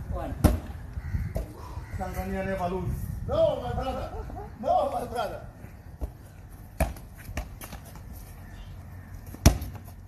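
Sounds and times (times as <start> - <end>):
basketball thudding on hard surface: 9.4 - 9.9.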